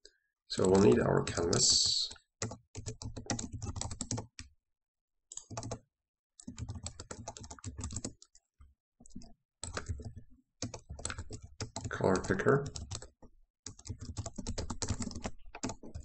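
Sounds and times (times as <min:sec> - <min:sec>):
computer keyboard typing: 0:00.6 - 0:04.5, 0:05.3 - 0:05.8, 0:06.4 - 0:16.0.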